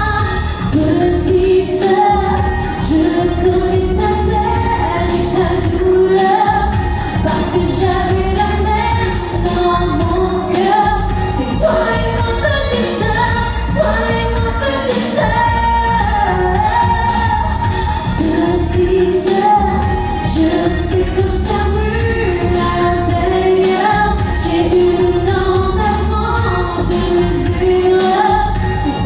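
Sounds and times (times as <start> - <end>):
band accompaniment: 0.0 - 29.0
woman singing pop song: 0.0 - 29.0.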